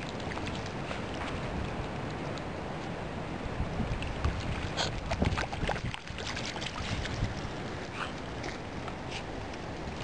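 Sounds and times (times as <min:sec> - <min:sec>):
water splashing: 0:00.0 - 0:10.0
wind rumble on microphone: 0:00.0 - 0:10.0.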